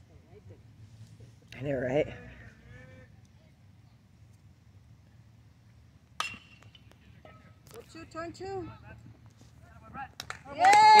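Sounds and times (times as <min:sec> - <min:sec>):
woman shouting yay: 0:10.5 - 0:11.0.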